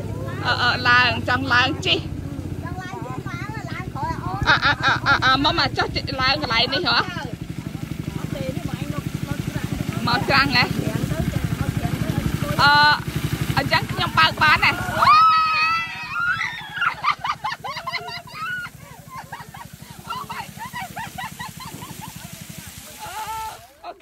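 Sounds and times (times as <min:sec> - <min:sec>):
motor boat engine running: 0:00.0 - 0:24.0.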